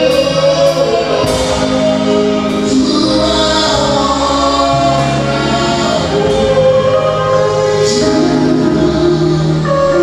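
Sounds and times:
choir singing gospel song: 0:00.0 - 0:10.0
low bass line: 0:00.0 - 0:10.0.

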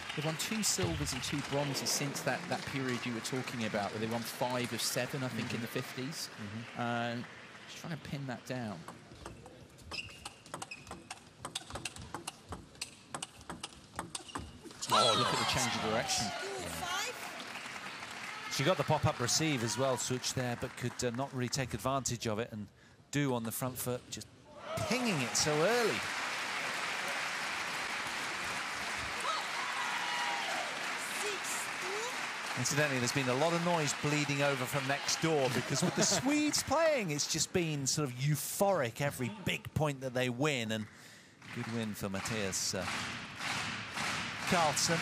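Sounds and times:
crowd clapping: 0:00.0 - 0:08.6, 0:14.9 - 0:21.8, 0:24.8 - 0:37.8, 0:40.8 - 0:45.0
table tennis ball clicking: 0:10.2 - 0:14.6.

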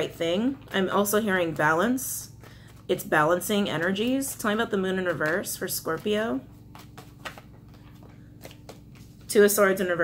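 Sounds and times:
faint steady hum: 0:00.0 - 0:10.0
cards clicking: 0:06.7 - 0:09.1.

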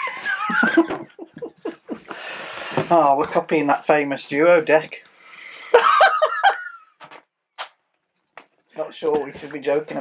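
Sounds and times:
men laughing: 0:00.0 - 0:02.3, 0:05.7 - 0:07.0.

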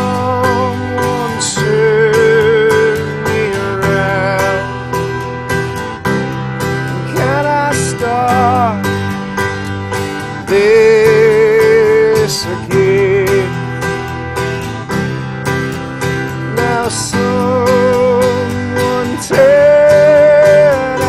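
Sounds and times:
person singing wordless melody: 0:00.0 - 0:05.7, 0:06.7 - 0:14.6, 0:16.1 - 0:21.0
held keyboard chords: 0:00.0 - 0:21.0
strummed acoustic guitar: 0:00.0 - 0:21.0.

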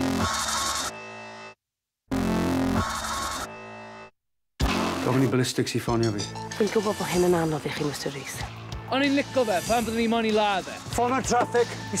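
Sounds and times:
dramatic electronic trailer music: 0:00.0 - 0:12.0.

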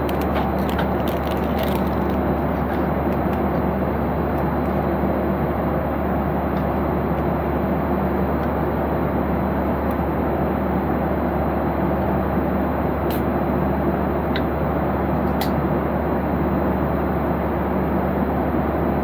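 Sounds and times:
jet engine drone: 0:00.0 - 0:19.0.

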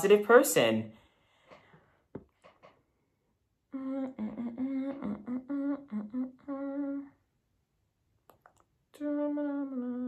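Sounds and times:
young man humming: 0:03.7 - 0:07.2, 0:08.9 - 0:10.0.

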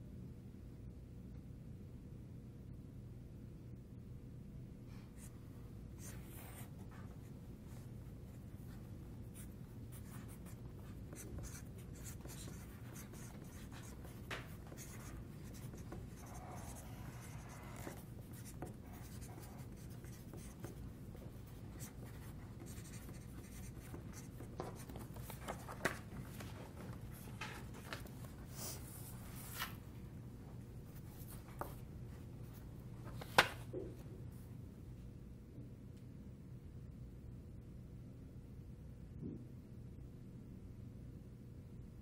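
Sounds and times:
low room hum: 0:00.0 - 0:42.0
markers scratching on paper: 0:09.4 - 0:26.5.

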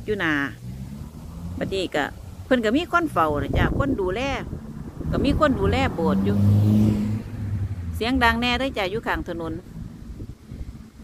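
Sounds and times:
passing car engine hum: 0:00.0 - 0:11.0.

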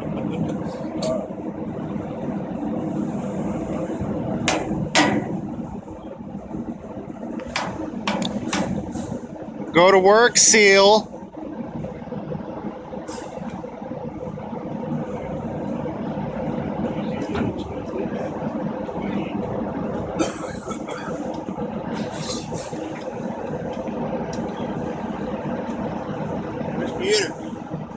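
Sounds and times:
machinery humming drone: 0:00.0 - 0:27.9.

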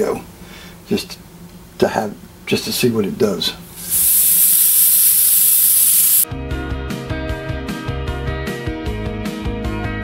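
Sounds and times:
airbrush hissing: 0:03.7 - 0:06.3.

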